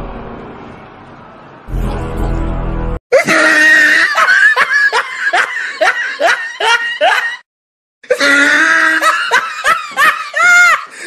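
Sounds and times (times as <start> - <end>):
young man laughing loudly: 3.1 - 7.4, 8.1 - 11.0.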